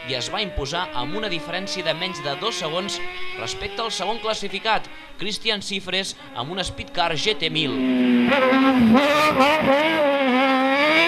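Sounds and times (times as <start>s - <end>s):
race car engine at high revs: 0.0s - 5.2s, 6.1s - 11.0s.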